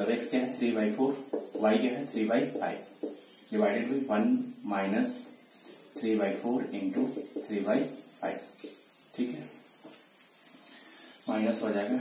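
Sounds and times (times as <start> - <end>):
crickets trilling: 0.0 - 12.0
man speaking: 3.5 - 5.3, 6.0 - 8.5, 11.3 - 12.0.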